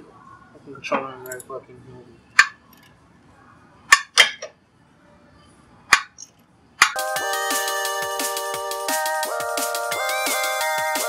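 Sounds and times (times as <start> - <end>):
electronic music with heavy beat: 7.0 - 11.0.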